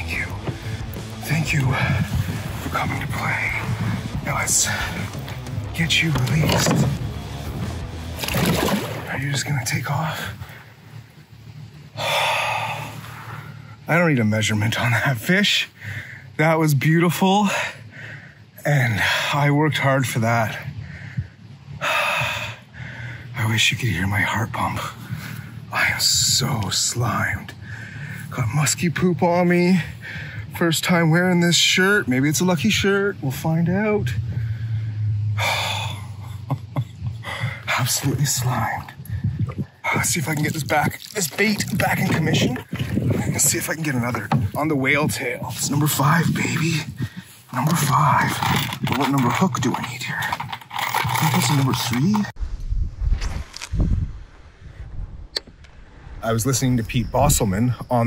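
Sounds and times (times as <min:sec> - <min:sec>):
water sloshing and splashing: 0:00.0 - 0:10.6, 0:37.7 - 0:45.8
background music: 0:00.0 - 0:19.3
low hum: 0:00.0 - 0:58.0.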